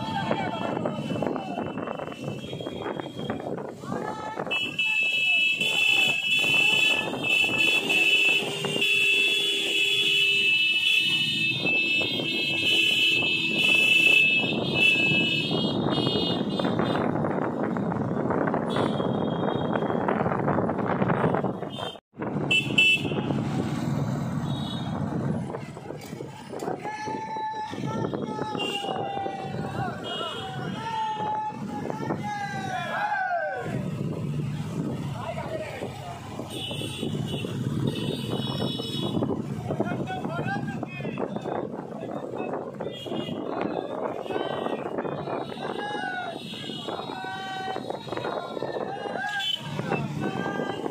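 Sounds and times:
motorcycle engines at low speed: 0:05.7 - 0:26.8, 0:33.6 - 0:44.3.

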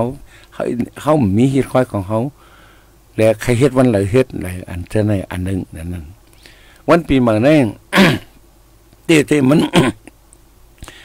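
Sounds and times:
man speaking: 0:00.0 - 0:02.4, 0:03.2 - 0:06.2, 0:06.9 - 0:08.2, 0:09.1 - 0:10.0
man clearing his throat: 0:07.9 - 0:08.4, 0:09.5 - 0:10.2.

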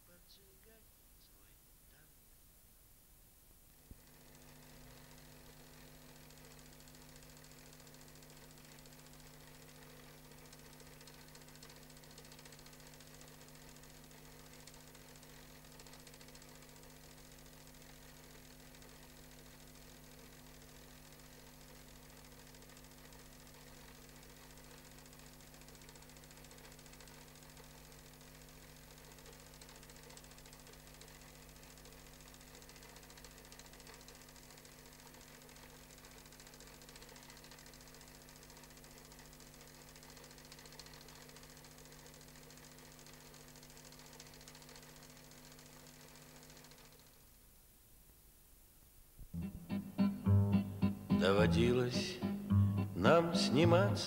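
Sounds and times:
faint hum with hiss: 0:00.0 - 0:54.0.

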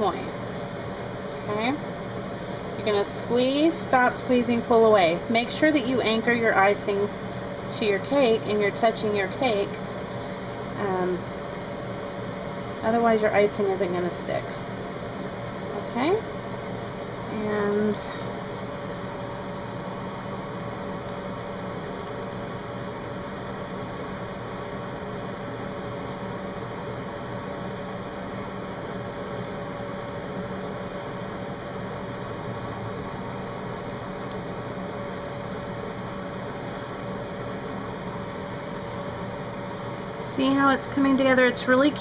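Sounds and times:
machine hum and hiss: 0:00.0 - 0:42.0.

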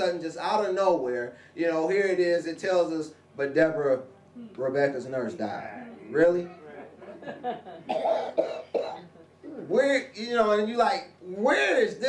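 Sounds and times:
man coughing: 0:07.9 - 0:09.6.

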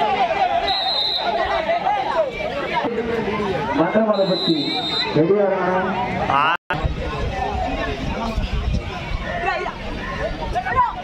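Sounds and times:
men's voices and crowd chatter: 0:00.0 - 0:11.0.

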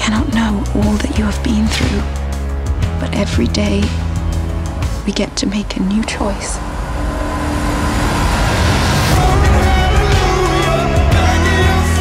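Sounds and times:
low rumbling swell: 0:03.9 - 0:11.7.

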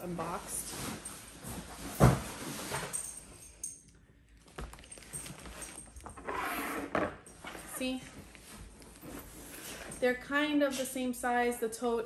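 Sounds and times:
handbags being handled: 0:04.4 - 0:10.3.

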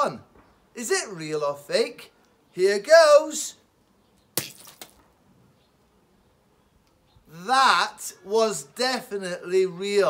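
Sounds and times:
egg smashing on stone: 0:04.4 - 0:05.1.

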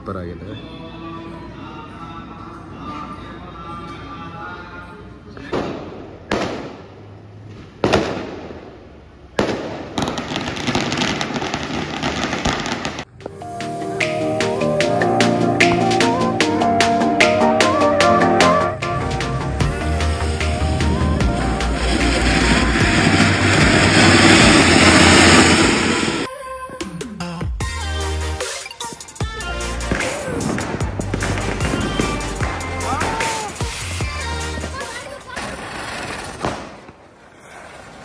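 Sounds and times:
firecracker bangs: 0:05.4 - 0:06.9, 0:07.8 - 0:08.8, 0:09.4 - 0:13.1, 0:19.6 - 0:26.3, 0:29.8 - 0:37.0
rapid firecracker crackling: 0:07.6 - 0:13.2, 0:18.9 - 0:26.3, 0:28.9 - 0:38.0.

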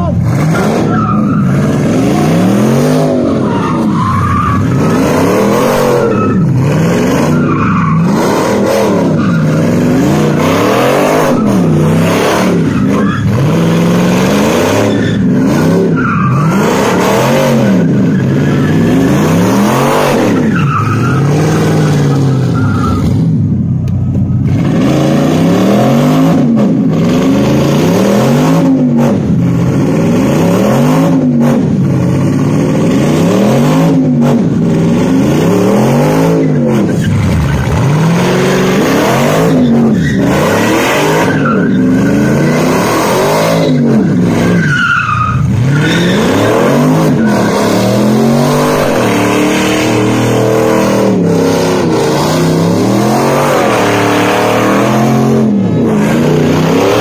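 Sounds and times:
tyres screeching: 0:00.0 - 0:23.3, 0:33.4 - 0:57.0
car engine at high revs: 0:00.0 - 0:57.0.

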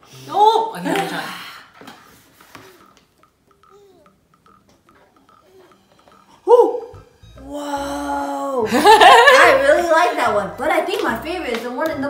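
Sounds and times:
faint soft ticking: 0:01.6 - 0:12.0.

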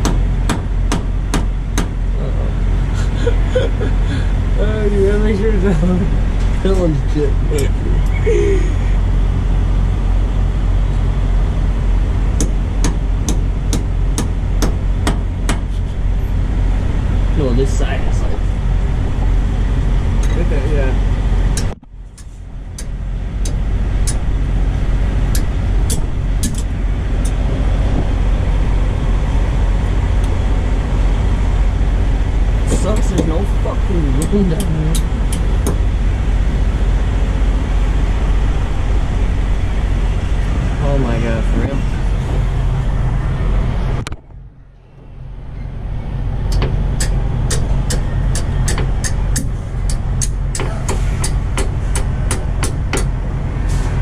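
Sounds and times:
diesel truck engine idling: 0:00.0 - 0:54.0.

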